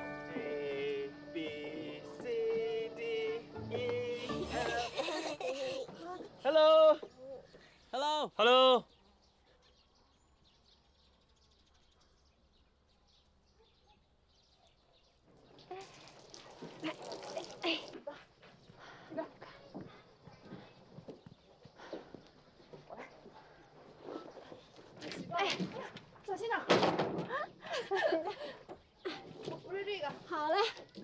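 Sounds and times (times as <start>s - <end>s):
women talking: 29.1s - 31.0s.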